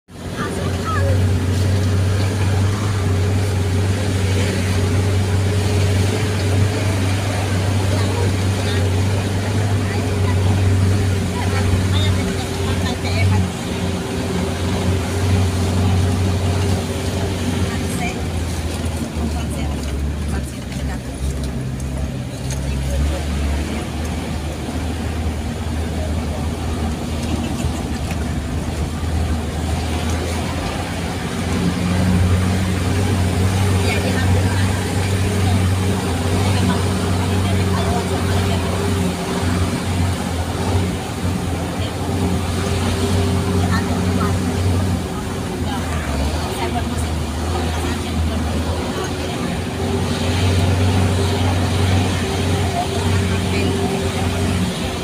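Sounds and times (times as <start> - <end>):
vehicle engine droning with whine: 0.0 - 55.0.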